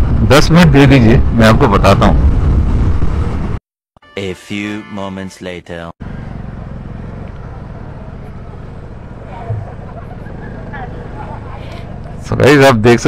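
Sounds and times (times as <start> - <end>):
motorcycle engine at low revs: 6.0 - 12.3.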